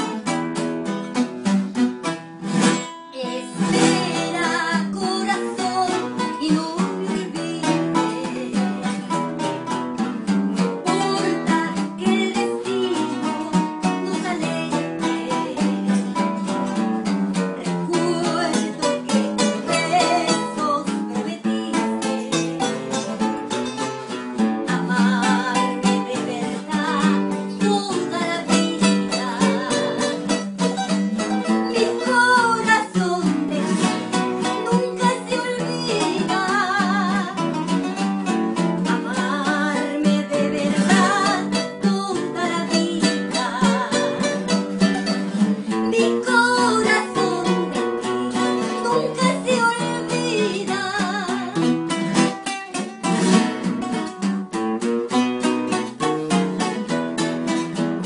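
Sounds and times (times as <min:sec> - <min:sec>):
acoustic guitars strumming: 0:00.0 - 0:58.0
person singing with vibrato: 0:03.1 - 0:09.2, 0:10.6 - 0:16.8, 0:17.6 - 0:23.2, 0:24.4 - 0:38.0, 0:38.8 - 0:51.8.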